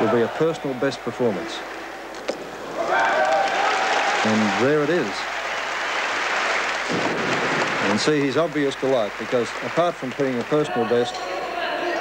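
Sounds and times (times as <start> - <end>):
audience applauding: 2.7 - 11.2.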